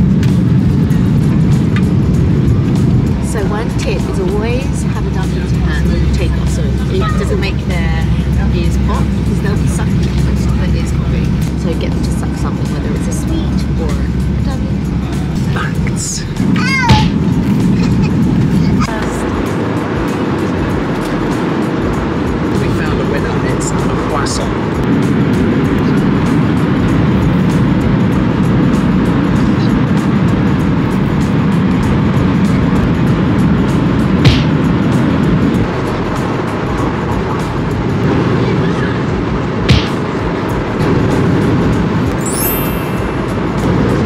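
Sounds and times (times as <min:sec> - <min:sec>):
airliner cabin engine roar: 0:00.0 - 0:44.0.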